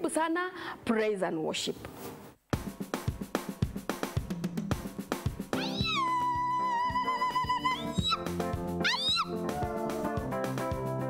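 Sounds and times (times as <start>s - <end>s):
drum and bass backing: 2.6s - 11.0s.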